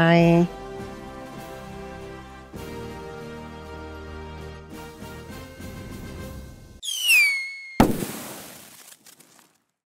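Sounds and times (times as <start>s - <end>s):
falling whistle: 6.8s - 7.8s.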